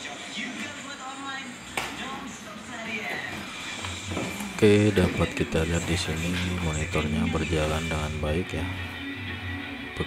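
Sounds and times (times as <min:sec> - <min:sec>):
background music: 0:00.0 - 0:10.0
voices on television: 0:00.0 - 0:10.0.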